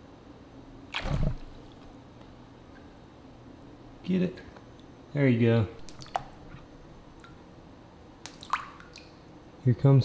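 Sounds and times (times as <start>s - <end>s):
quick water plops: 0.9s - 1.8s, 8.2s - 9.2s
water dripping and splashing: 1.0s - 1.8s, 5.8s - 6.3s, 8.2s - 9.2s.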